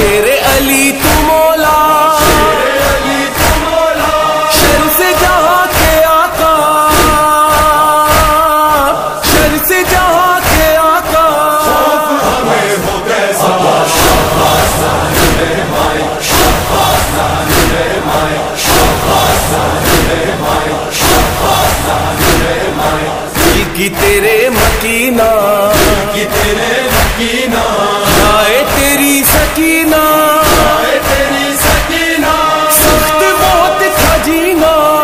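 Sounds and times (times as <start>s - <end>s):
group of voices chanting: 0.0s - 35.0s
rhythmic thud: 0.0s - 35.0s.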